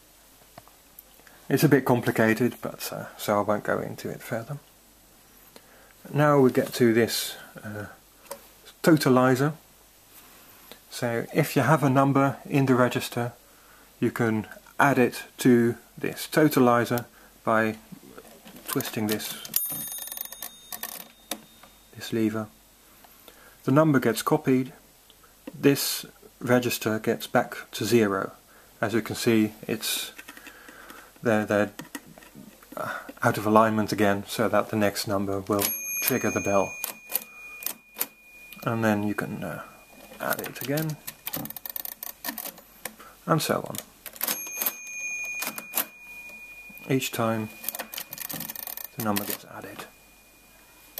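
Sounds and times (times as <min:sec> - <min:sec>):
small bell ringing: 0:19.5 - 0:22.0, 0:35.6 - 0:42.8, 0:44.2 - 0:50.9
mechanism clicking and clattering: 0:40.0 - 0:43.0, 0:43.7 - 0:44.8, 0:47.6 - 0:49.4.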